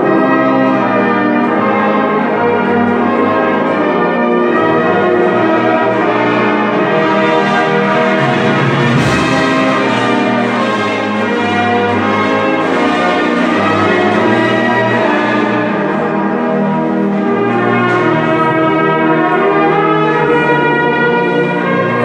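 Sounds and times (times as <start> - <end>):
brass band playing chords: 0.0 - 22.0
steady bass line: 6.8 - 16.8.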